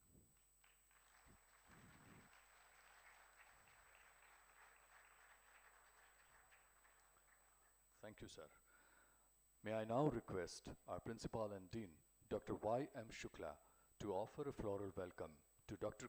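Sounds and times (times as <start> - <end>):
faint audience applause: 0.6 - 8.0.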